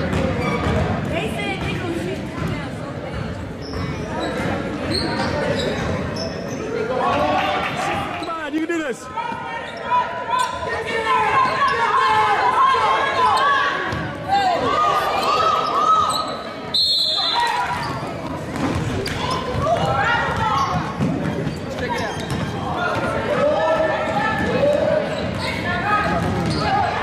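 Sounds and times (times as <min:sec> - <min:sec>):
voices echoing in gym: 0:00.0 - 0:27.0.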